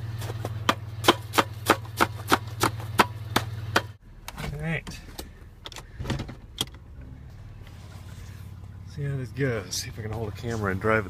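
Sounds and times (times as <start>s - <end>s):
truck engine idling: 0.0s - 11.0s.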